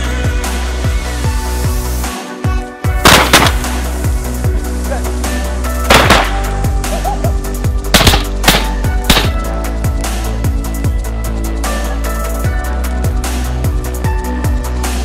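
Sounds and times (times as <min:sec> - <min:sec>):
shotgun blasts: 0:03.0 - 0:03.8, 0:05.9 - 0:06.6, 0:07.9 - 0:09.5.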